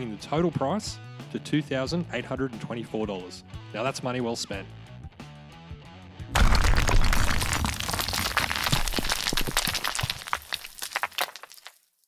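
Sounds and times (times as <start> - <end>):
stone shattering and crumbling: 6.3 - 12.0.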